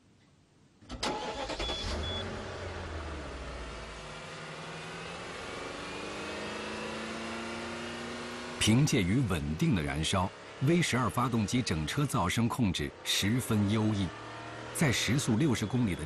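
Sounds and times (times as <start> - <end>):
car engine starting and idling: 0.8 - 16.0
short high beeps: 1.6 - 2.3.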